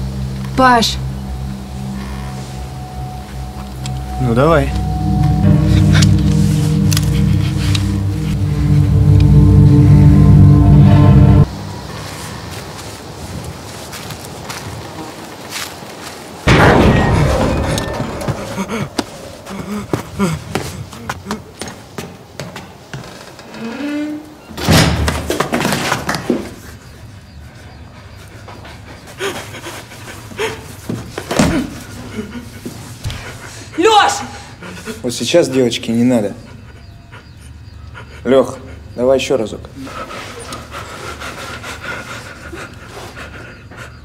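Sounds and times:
music: 0.0s - 11.7s
breaths and grunts: 17.4s - 21.7s.

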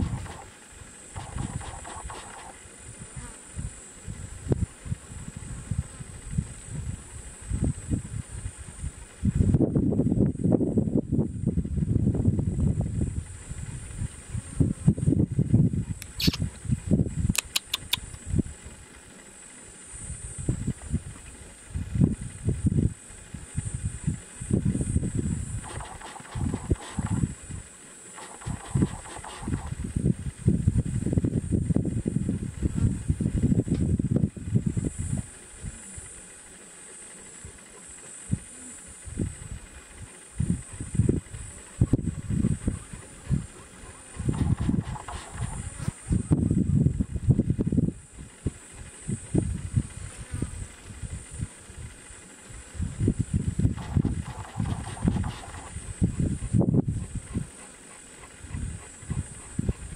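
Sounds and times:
wind buffeting microphone: 0.0s - 0.5s, 1.2s - 17.4s, 20.2s - 27.7s, 28.4s - 35.3s, 39.0s - 52.0s, 52.6s - 57.6s, 58.2s - 59.9s
faint clicks: 17.4s - 18.2s
steady high-pitched hiss: 18.0s - 59.9s.

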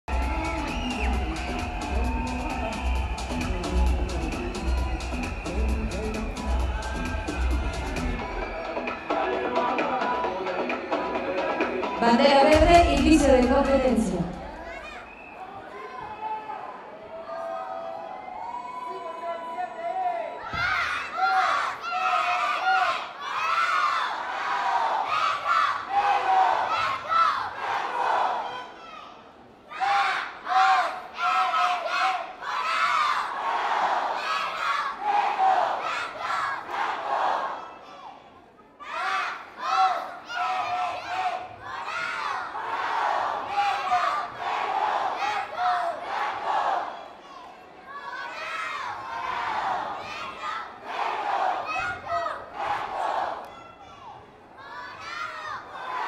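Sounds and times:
cheerleaders shouting in unison: 20.4s - 38.1s, 38.8s - 56.0s.

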